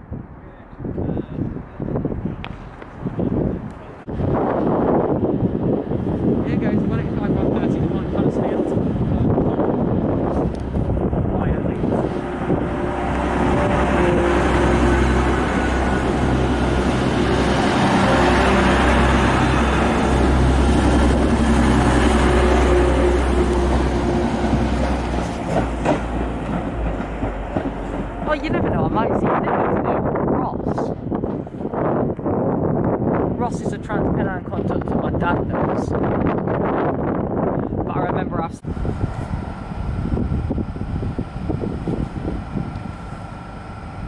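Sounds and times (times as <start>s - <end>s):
diesel train engine drone: 0.0s - 37.9s, 38.6s - 44.0s.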